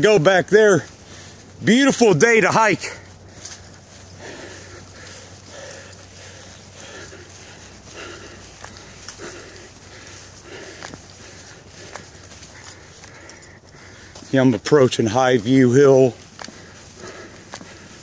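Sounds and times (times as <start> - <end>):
footsteps on dirt trail: 0.0 - 18.0.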